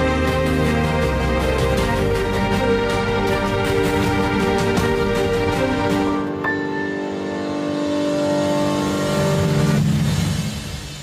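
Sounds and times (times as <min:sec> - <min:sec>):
tv theme music with held chords: 0:00.0 - 0:11.0.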